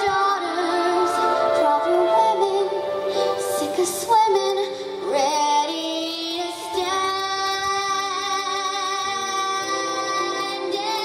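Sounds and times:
girl singing into microphone: 0.0s - 11.0s
musical accompaniment: 0.0s - 11.0s.

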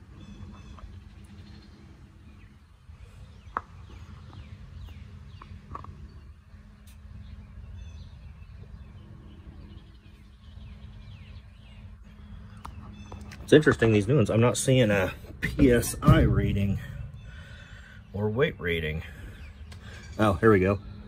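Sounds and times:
low background rumble: 0.0s - 21.0s
small birds chirping: 0.0s - 21.0s.

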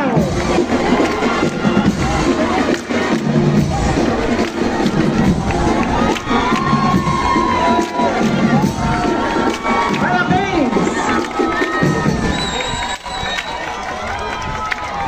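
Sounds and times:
crowd cheering and shouting: 0.0s - 15.0s.

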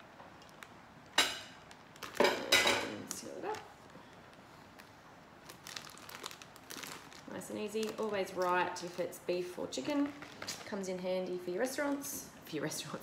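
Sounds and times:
plastic bag crinkling: 0.4s - 12.2s
kitchenware clacking: 2.2s - 3.0s.

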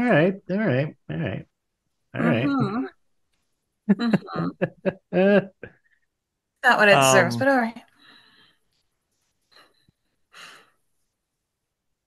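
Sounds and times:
person sighing: 2.2s - 2.8s.

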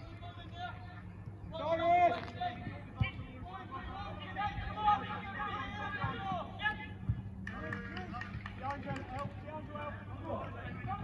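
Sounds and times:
footballers calling out: 0.0s - 11.0s.

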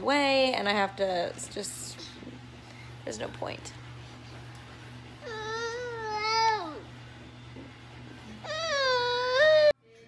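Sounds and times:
toddler whining: 5.2s - 6.9s, 8.4s - 9.8s.

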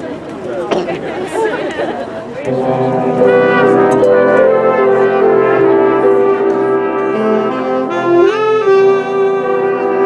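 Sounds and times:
chatter of voices: 0.0s - 7.7s
brass section held chord: 2.5s - 10.0s.

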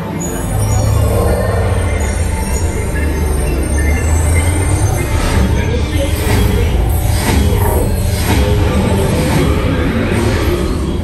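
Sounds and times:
roller coaster rumbling on track: 0.0s - 11.0s.

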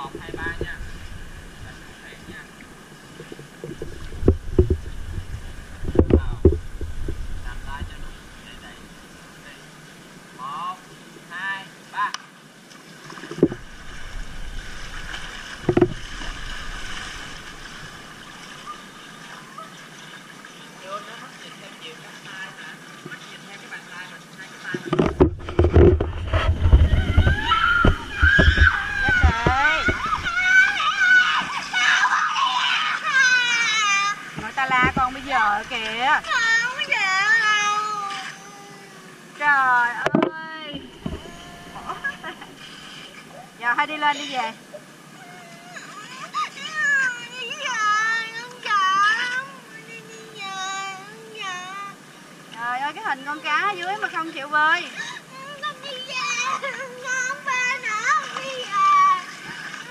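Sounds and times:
water splashing and sloshing: 0.0s - 59.9s
young child crying: 27.0s - 34.3s, 36.2s - 39.2s, 41.2s - 42.5s, 45.1s - 52.0s
girl crying in fear: 41.2s - 42.5s.

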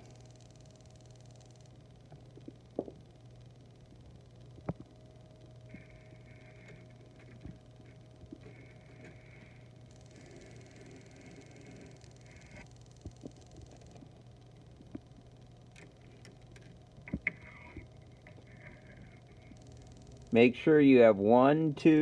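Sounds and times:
low hum: 0.0s - 22.0s.

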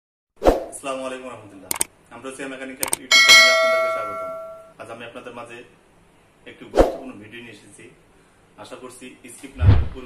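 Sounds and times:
double mouse click: 2.8s - 3.0s
bright bell chime: 3.1s - 4.7s.

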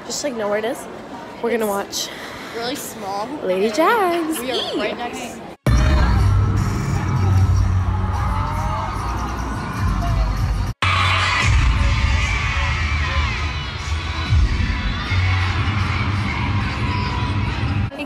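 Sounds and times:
audience screaming and cheering: 5.7s - 17.9s
music with heavy bass: 5.7s - 17.9s.

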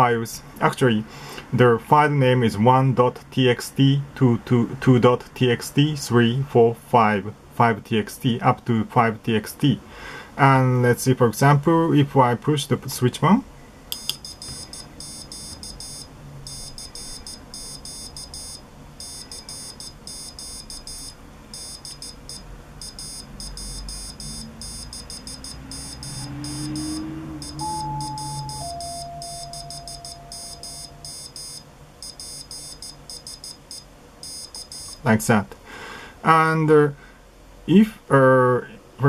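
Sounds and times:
tone stepping down in pitch: 14.0s - 32.8s
high-pitched morse code beeps: 14.0s - 35.1s.

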